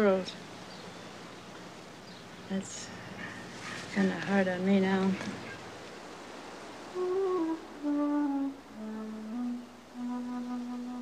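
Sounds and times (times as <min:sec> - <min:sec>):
person humming melody: 0:06.9 - 0:11.0.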